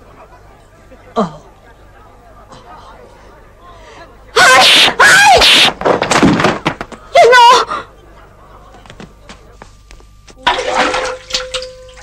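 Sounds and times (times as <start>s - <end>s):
high-pitched vocal yells: 4.4s - 5.7s, 7.2s - 7.7s.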